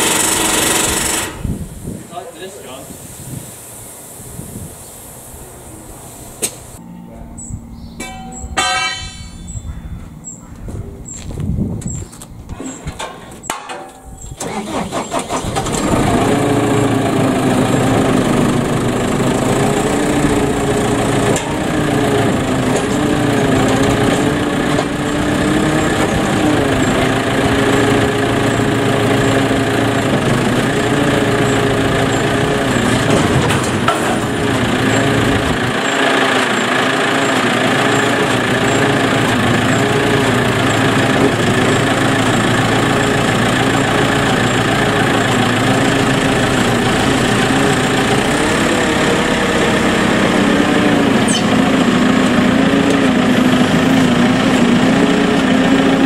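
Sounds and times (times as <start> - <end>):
diesel engine running: 0.0 - 2.8, 3.5 - 56.0.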